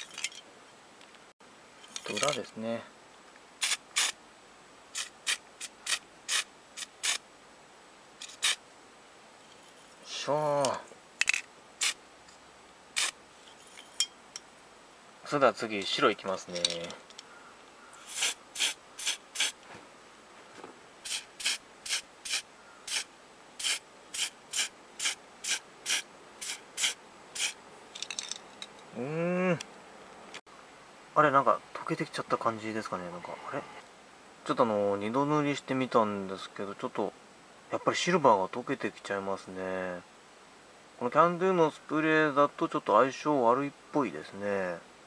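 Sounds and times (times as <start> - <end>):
spray can hissing bursts: 3.6 - 4.2, 5.0 - 7.2, 13.0 - 13.2, 18.1 - 19.6, 21.0 - 27.6.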